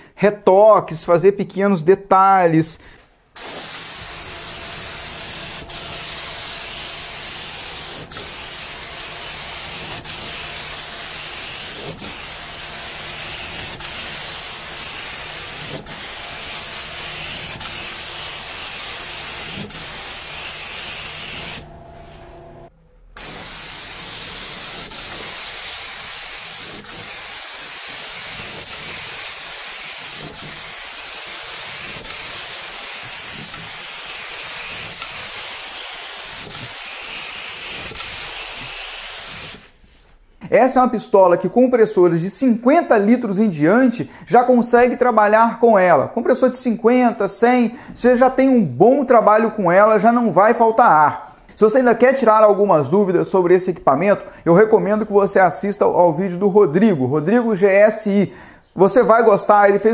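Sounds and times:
spray gun hissing: 3.4 - 22.3, 23.2 - 39.7.

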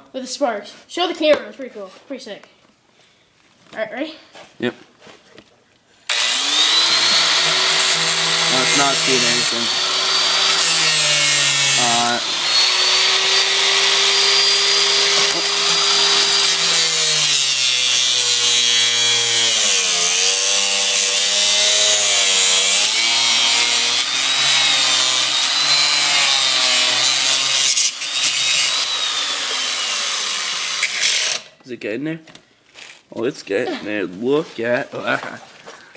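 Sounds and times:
angle grinder cutting chain: 6.1 - 31.6.

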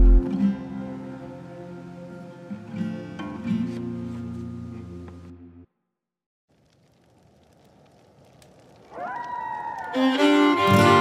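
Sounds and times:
faint crackling hiss: 6.5 - 9.0.

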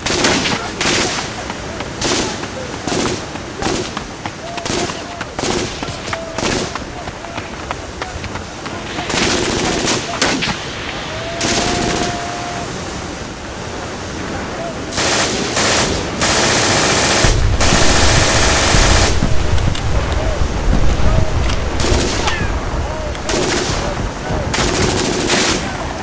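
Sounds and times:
machine-gun bursts: 0.0 - 4.0, 4.6 - 6.8, 9.0 - 10.6, 15.0 - 19.2, 23.3 - 23.8, 24.5 - 25.7
gunshots: 0.0 - 12.2, 14.9 - 19.3, 21.7 - 22.5, 23.2 - 26.0
deep rumble: 17.2 - 25.4.

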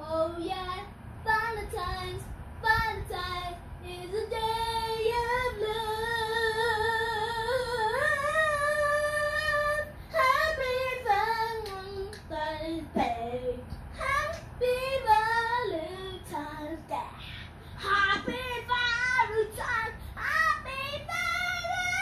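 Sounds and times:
child singing unaccompanied: 0.0 - 22.0
child breathing: 20.0 - 20.2.

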